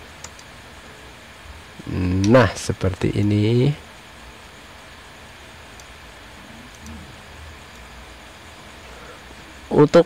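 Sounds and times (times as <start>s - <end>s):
faint hum: 0.0s - 10.0s
steady low hiss: 0.0s - 10.0s.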